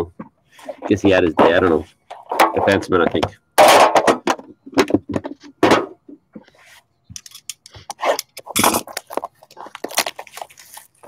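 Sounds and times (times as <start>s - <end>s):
plastic wrap crinkling and tearing: 8.5s - 11.0s.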